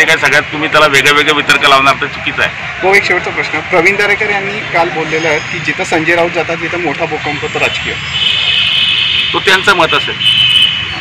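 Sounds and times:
man talking: 0.0s - 8.1s, 9.3s - 10.3s.

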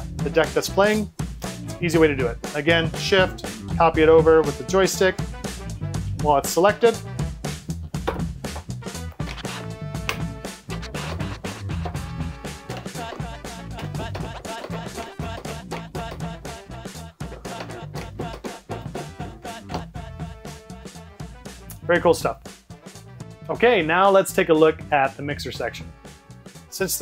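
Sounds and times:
dj music with heavy bass: 9.2s - 21.0s.

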